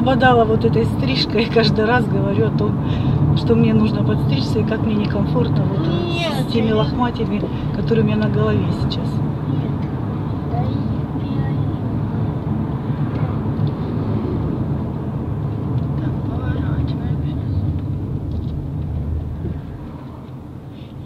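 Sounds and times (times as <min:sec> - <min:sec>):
road and engine rumble in car: 0:00.0 - 0:21.0.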